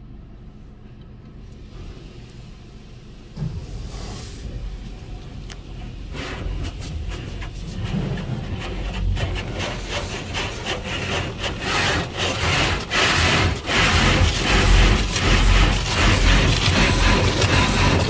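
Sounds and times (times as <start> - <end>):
car wash brushes scrubbing car: 3.4 - 18.0
water spray: 6.1 - 18.0.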